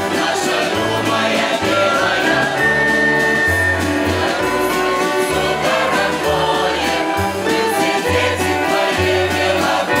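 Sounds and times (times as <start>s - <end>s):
accordion: 0.0s - 10.0s
mixed choir singing in harmony: 0.0s - 10.0s.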